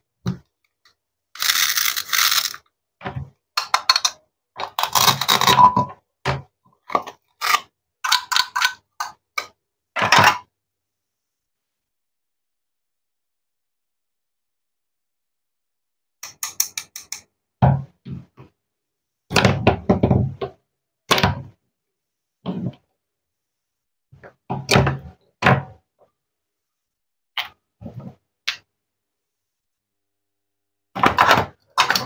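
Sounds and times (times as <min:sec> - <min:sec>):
hands scraping plastic toy: 0:01.4 - 0:02.6, 0:03.8 - 0:05.5, 0:07.0 - 0:09.1.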